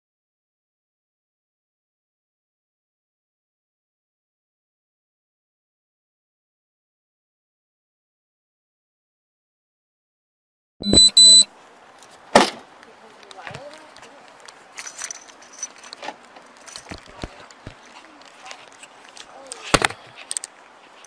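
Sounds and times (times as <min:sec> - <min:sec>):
short loud electronic beep: 0:10.8 - 0:11.5
gear rustling and clicking: 0:13.2 - 0:21.0.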